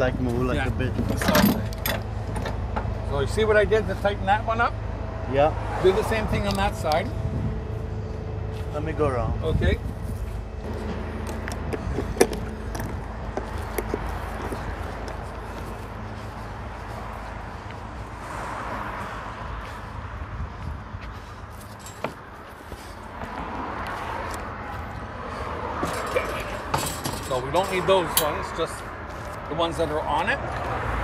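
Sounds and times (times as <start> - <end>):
street noise: 0.0 - 31.0.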